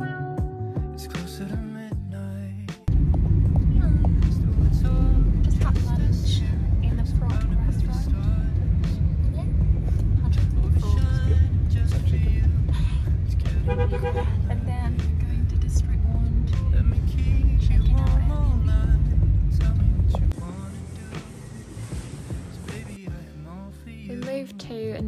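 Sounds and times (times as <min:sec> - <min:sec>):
car interior road rumble: 0:02.9 - 0:23.0
people talking: 0:03.7 - 0:08.5, 0:09.2 - 0:09.6, 0:10.2 - 0:12.1, 0:14.4 - 0:15.8, 0:24.1 - 0:25.0.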